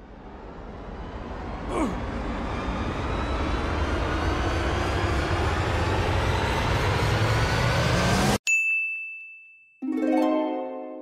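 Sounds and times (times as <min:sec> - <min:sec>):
bright bell ding: 0:08.5 - 0:11.0.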